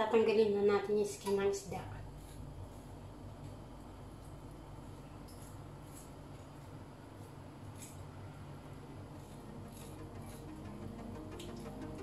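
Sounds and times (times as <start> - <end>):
low room hum: 0.0 - 12.0
knife scraping fish skin: 9.1 - 10.8.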